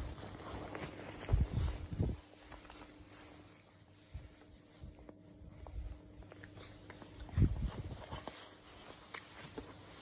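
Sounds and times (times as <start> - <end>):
puppies scuffing on jacket: 0.0 - 10.0.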